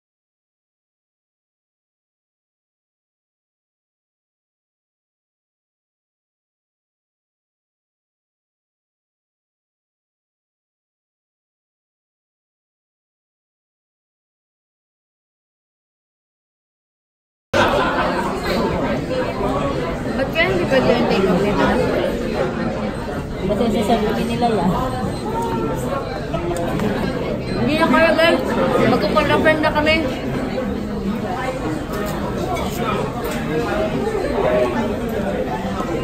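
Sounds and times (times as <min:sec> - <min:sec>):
chatter of voices: 0:17.6 - 0:36.0
people talking at once: 0:17.6 - 0:36.0
restaurant hubbub: 0:17.6 - 0:36.0.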